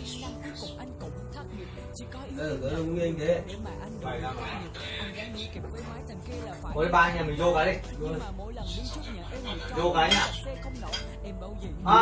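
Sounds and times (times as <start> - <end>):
dishes and cutlery clinking: 9.4 - 11.3.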